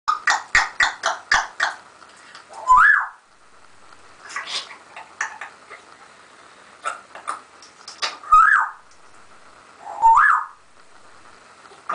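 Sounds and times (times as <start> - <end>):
parrot harsh calls: 0.1 - 1.8, 2.5 - 3.2, 8.2 - 8.8, 9.8 - 10.6
parrot rising whistle: 2.6 - 3.2, 8.2 - 8.8, 9.8 - 10.6.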